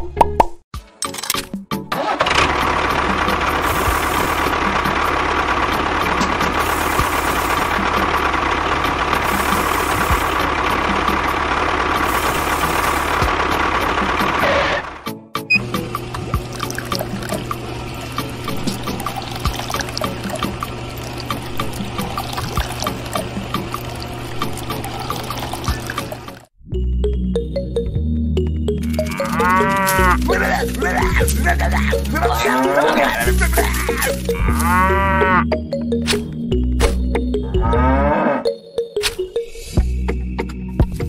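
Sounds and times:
model tractor motor running: 2.0 - 15.0, 15.6 - 26.5, 28.8 - 35.0.

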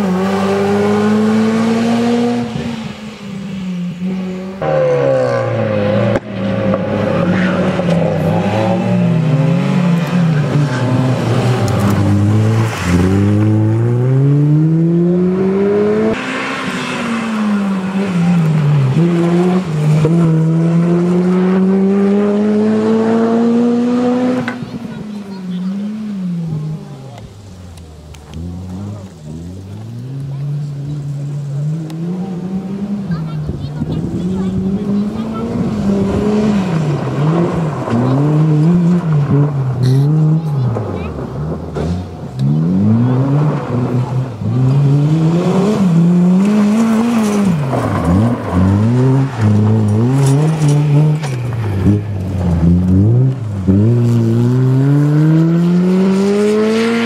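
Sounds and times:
gravel and tyre noise: 0.0 - 57.0
rally car engine revving: 0.0 - 57.0.

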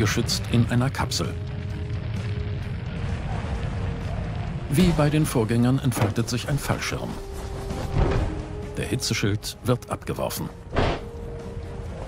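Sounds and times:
background music steady note: 0.0 - 12.0
continuous low rumble: 0.0 - 12.0.

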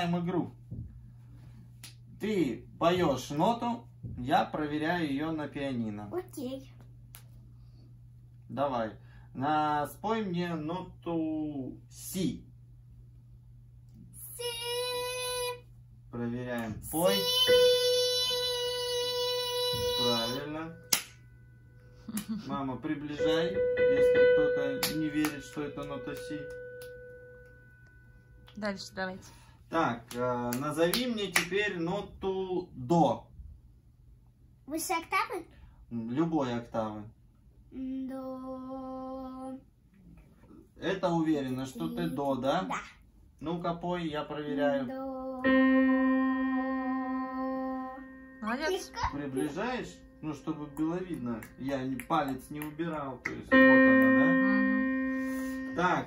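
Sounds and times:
digital piano note: 17.0 - 18.9, 22.9 - 29.0, 45.4 - 56.0.

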